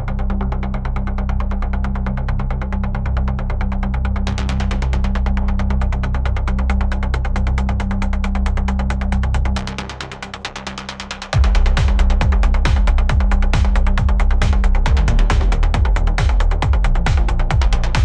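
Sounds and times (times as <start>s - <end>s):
low bass drone: 0.0s - 18.0s.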